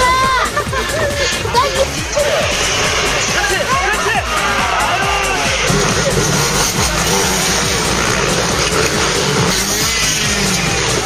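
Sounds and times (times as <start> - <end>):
motocross engines revving: 0.0 - 11.0.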